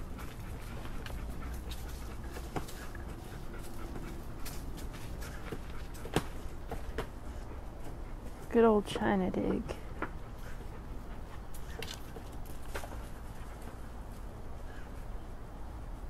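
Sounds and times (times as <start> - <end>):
dog claws scratching dirt: 0.0 - 7.2, 10.0 - 14.2.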